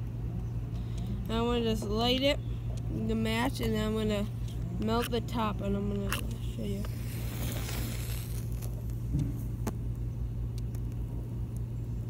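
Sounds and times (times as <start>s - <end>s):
steady low rumble: 0.0s - 12.0s
wooden match striking: 5.9s - 9.0s.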